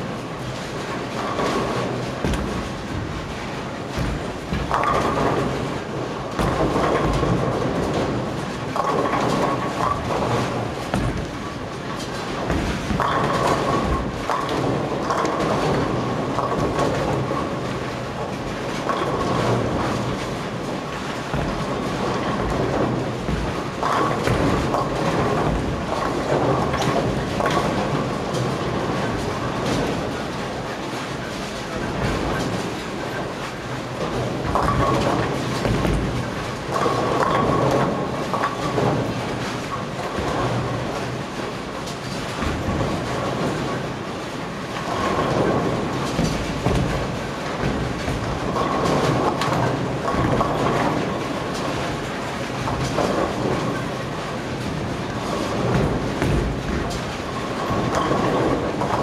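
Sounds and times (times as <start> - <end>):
bowling balls rolling: 0.0 - 59.0
bowling pins clattering: 0.0 - 59.0.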